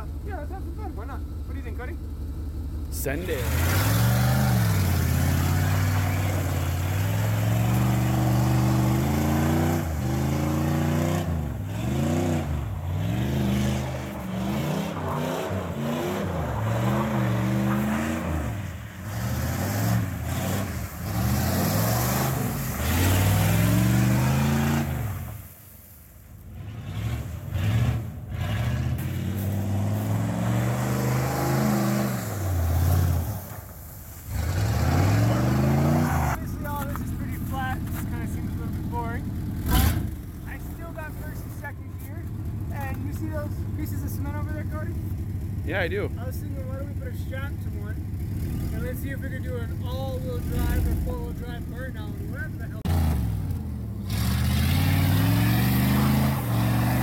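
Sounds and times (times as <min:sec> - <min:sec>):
truck engine revving: 0:00.0 - 0:25.4, 0:26.4 - 0:57.0.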